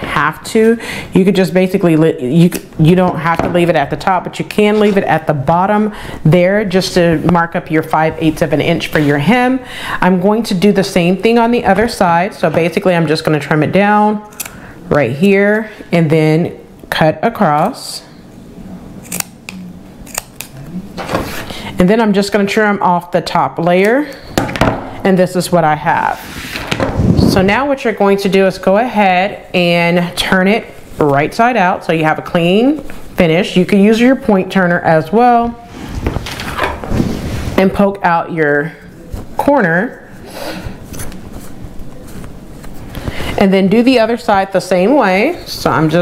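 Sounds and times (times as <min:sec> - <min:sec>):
fabric rustling and rubbing: 0:35.6 - 0:37.7.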